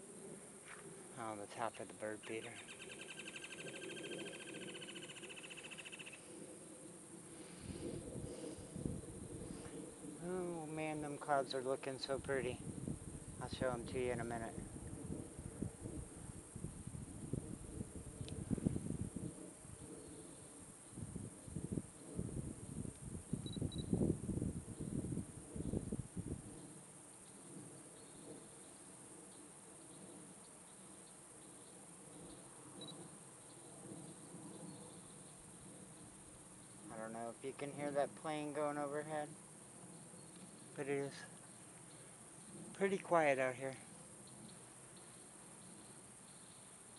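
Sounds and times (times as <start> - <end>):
plane droning overhead: 0.0 - 22.7, 31.6 - 46.1
faint insect chirps: 0.0 - 46.9
wind buffeting microphone: 6.3 - 11.2, 12.1 - 26.8.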